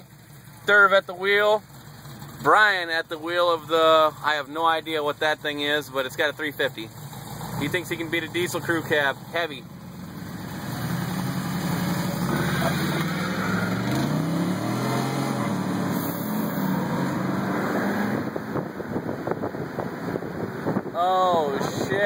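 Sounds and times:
diesel truck engine accelerating: 0:00.0 - 0:22.0
road and wind noise: 0:00.0 - 0:22.0.

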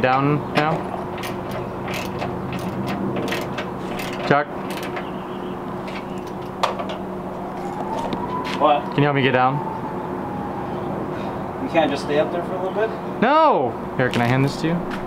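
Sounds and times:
tools clicking and clattering: 0:00.0 - 0:05.1, 0:05.8 - 0:08.2
steady hum: 0:00.0 - 0:15.0.

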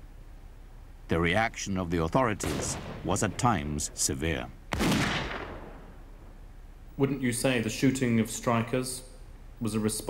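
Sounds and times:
faint hiss: 0:00.0 - 0:10.0
gunshot with long echo: 0:02.4 - 0:03.6, 0:04.7 - 0:06.0.

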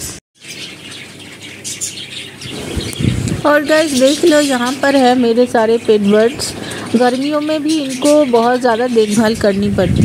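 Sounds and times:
budgerigars chirping: 0:00.4 - 0:10.0.

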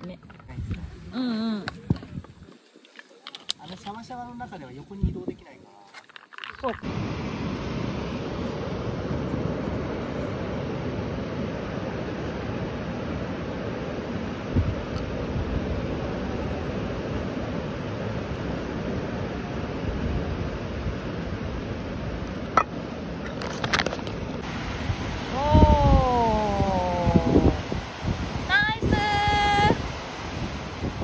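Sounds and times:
wind on microphone: 0:01.7 - 0:02.5, 0:04.9 - 0:05.4, 0:14.5 - 0:15.9, 0:24.4 - 0:31.0
surf washing onto beach: 0:24.4 - 0:31.0.

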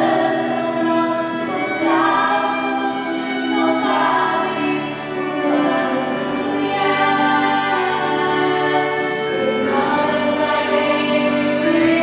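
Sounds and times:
violin: 0:00.0 - 0:12.0
women singing in harmony: 0:00.0 - 0:12.0.

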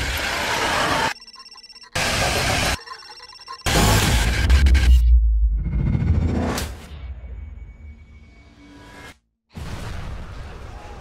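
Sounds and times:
thin high electronic tones: 0:01.1 - 0:03.9.

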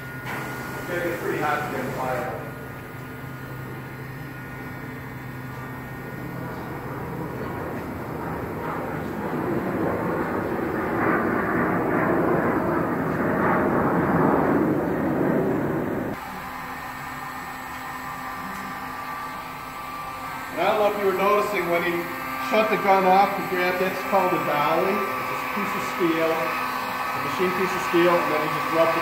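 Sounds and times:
heat gun blowing air: 0:00.0 - 0:02.5, 0:16.1 - 0:29.0.

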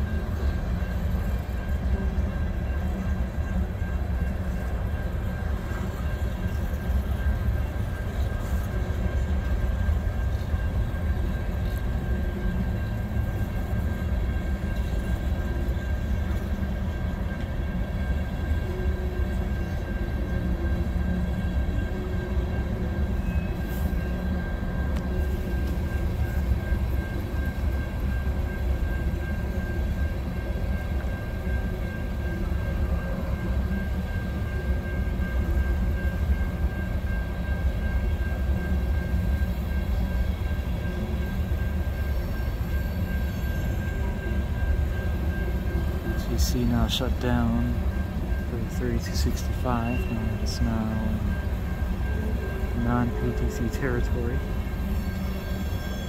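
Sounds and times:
freight train wheels rumbling: 0:00.0 - 0:56.0.

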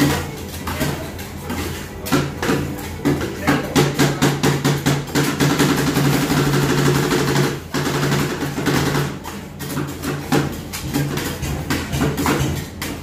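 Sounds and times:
metal spatulas chopping ice cream: 0:00.0 - 0:13.0.

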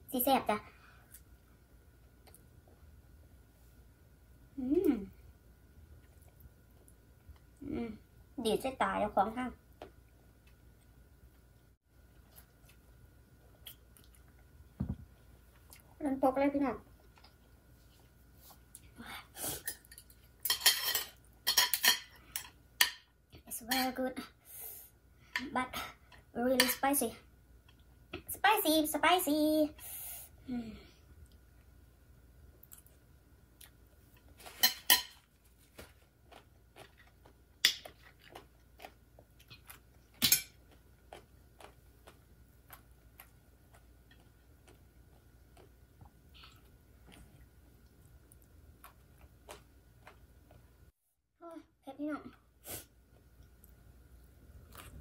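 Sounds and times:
cutlery clinking on a plate: 0:19.7 - 0:23.0, 0:34.5 - 0:35.2.

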